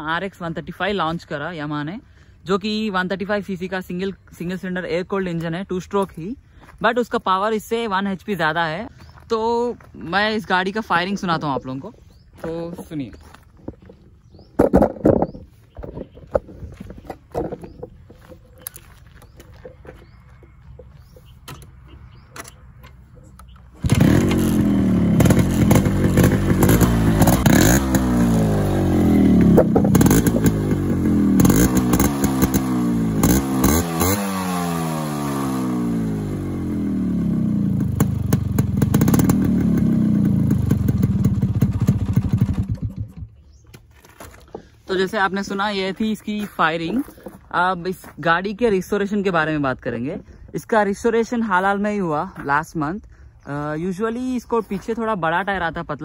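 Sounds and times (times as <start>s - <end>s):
light clatter and knocks: 13.6s - 18.6s
two-stroke motorcycle engine revving: 23.4s - 43.4s.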